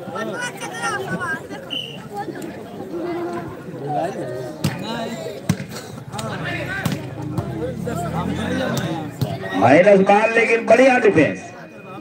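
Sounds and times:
voices of players and spectators: 0.0s - 12.0s
volleyball struck by hands: 5.4s - 7.6s, 8.7s - 9.5s.

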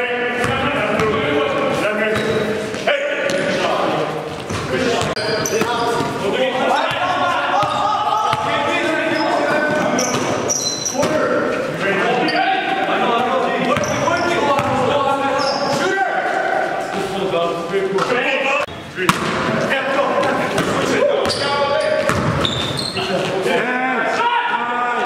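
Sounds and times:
players calling out: 0.0s - 25.0s
sneaker squeaks: 2.1s - 3.6s, 4.2s - 6.2s, 6.9s - 12.8s, 13.7s - 15.9s, 20.2s - 23.5s
basketball bouncing on wooden court: 6.9s - 8.6s, 13.8s - 14.9s, 20.2s - 22.8s.

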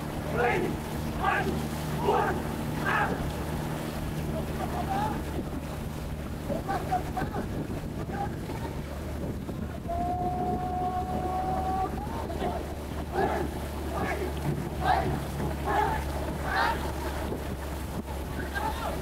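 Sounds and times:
wind on microphone: 0.0s - 19.0s
crew shouting and calling: 0.3s - 3.2s, 13.1s - 16.9s.

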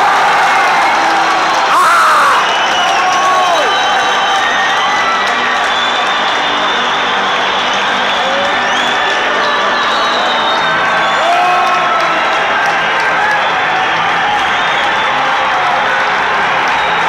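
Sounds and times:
stadium crowd cheering and singing: 0.0s - 17.0s
whoops and high whistles: 1.7s - 11.6s.

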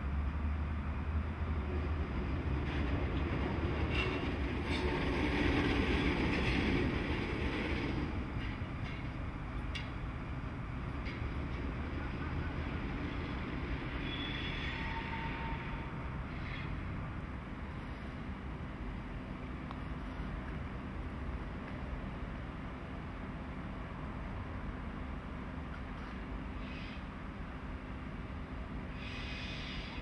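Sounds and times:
diesel locomotive engine hum: 0.0s - 30.0s.

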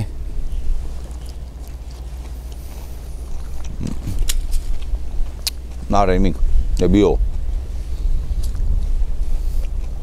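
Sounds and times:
steady low rumble: 0.0s - 10.0s
person chewing fried fish: 0.5s - 5.9s, 8.4s - 10.0s.

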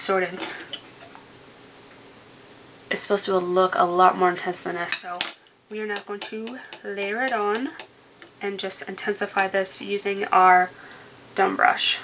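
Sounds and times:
woman speaking: 0.0s - 0.7s, 2.9s - 7.8s, 8.4s - 10.8s, 11.4s - 12.0s.

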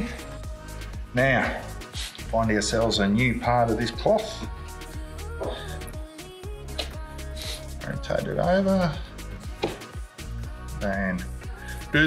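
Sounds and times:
background music with held notes: 0.0s - 12.0s.

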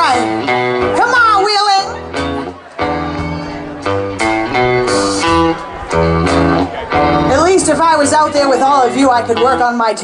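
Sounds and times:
electric guitar notes and chords: 0.0s - 10.0s
steady low note: 3.2s - 8.3s.

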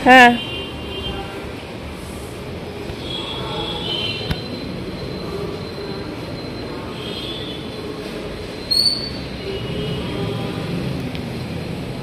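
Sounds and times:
steady mechanical noise: 0.0s - 12.0s
faint high squealing tones: 3.0s - 9.6s.

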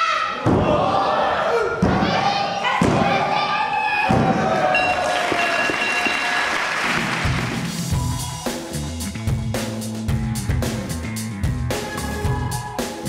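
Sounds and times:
loud shouting: 0.0s - 6.5s, 11.7s - 13.0s
steady ringing tone: 4.8s - 6.4s.

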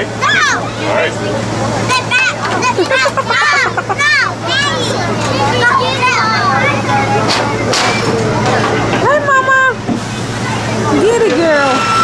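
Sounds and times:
machinery hum: 0.0s - 12.0s
voices: 0.0s - 12.0s.

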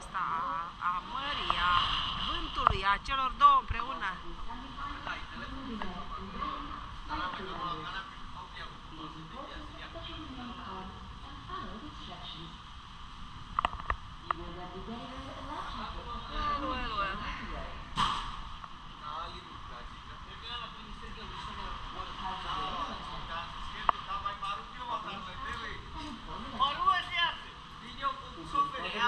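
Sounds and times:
steady low rumble: 0.0s - 26.6s
sharp knock: 18.0s - 18.4s.

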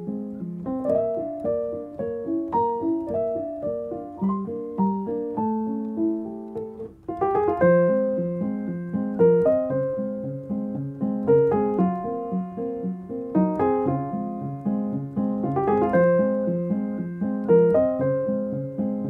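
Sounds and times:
piano music: 0.0s - 19.0s.

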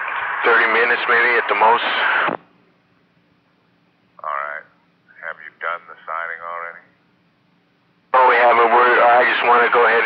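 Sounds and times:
radio hiss and hum: 0.0s - 2.6s, 4.2s - 7.0s, 8.0s - 10.0s
man's voice over radio: 0.4s - 2.4s, 4.2s - 6.9s, 8.1s - 10.0s.

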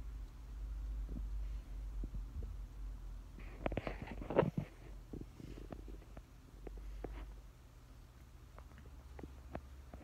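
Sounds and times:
faint clicks and rubs: 3.3s - 7.5s.

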